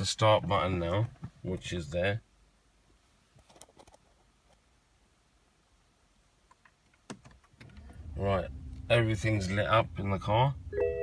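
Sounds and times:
low electric hum: 0:07.5 - 0:11.0.

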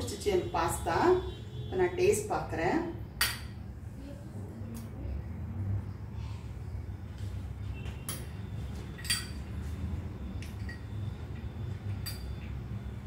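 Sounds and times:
spoon clinking glass bowl: 0:09.0 - 0:09.5, 0:12.0 - 0:12.5.

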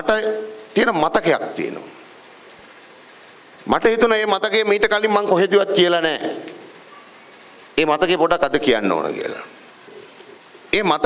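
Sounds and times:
man giving a speech: 0:00.0 - 0:02.0, 0:03.6 - 0:06.6, 0:07.8 - 0:09.6, 0:10.7 - 0:11.0.

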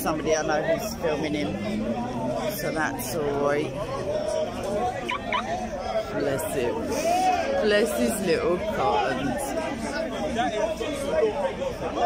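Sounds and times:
crowd talking outdoors: 0:00.0 - 0:12.0.

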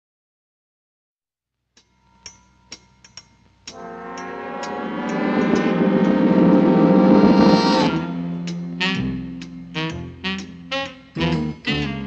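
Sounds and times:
cartoon soundtrack swell: 0:03.7 - 0:09.9.

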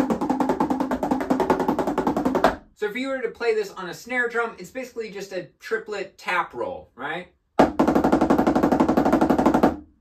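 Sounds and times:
snare drum roll: 0:07.6 - 0:09.8.

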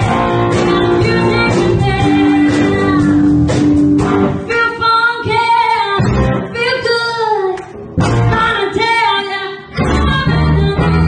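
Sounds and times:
woman singing: 0:00.0 - 0:03.7, 0:04.4 - 0:11.0
drums: 0:00.0 - 0:11.0
electric guitar: 0:00.0 - 0:11.0.

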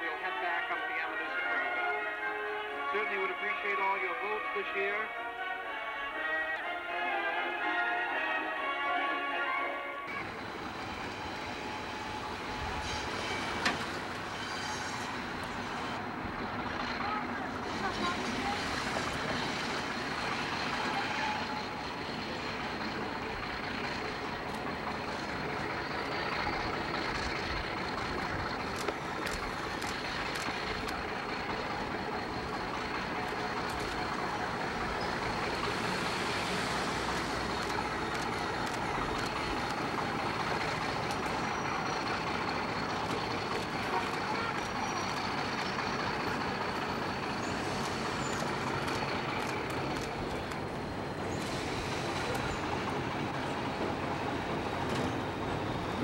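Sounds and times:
diesel locomotive running: 0:00.0 - 0:56.0.

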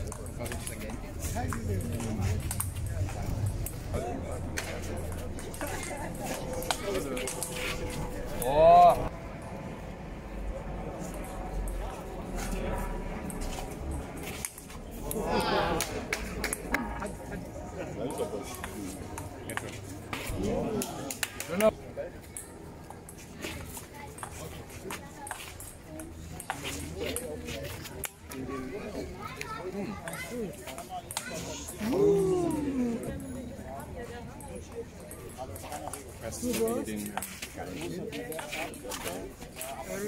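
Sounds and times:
voices: 0:00.0 - 0:40.0.

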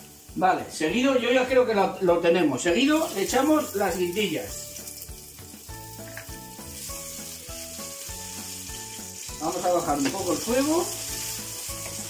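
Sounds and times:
peppers sizzling in hot oil: 0:00.0 - 0:12.0.

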